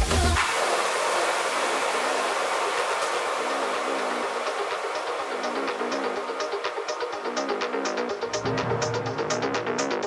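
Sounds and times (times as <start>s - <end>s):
house music: 5.0s - 10.0s.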